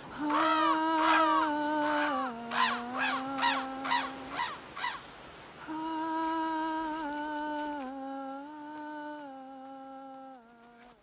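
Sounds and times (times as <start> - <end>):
person humming: 5.6 - 11.0.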